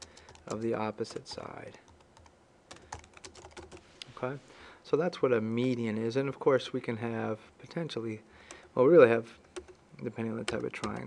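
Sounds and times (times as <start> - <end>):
keyboard typing: 0.0 - 3.8, 9.4 - 11.0.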